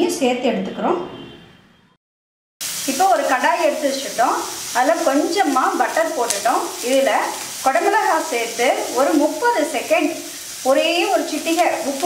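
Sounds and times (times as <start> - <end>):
vegetables sizzling in butter: 2.6 - 12.0.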